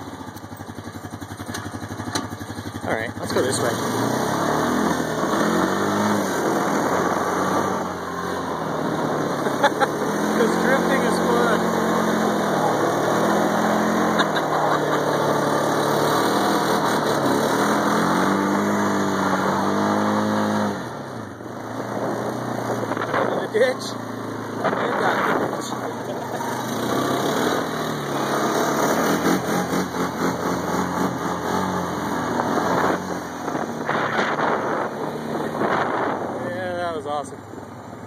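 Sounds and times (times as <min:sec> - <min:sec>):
quad engine revving: 0:00.0 - 0:38.0.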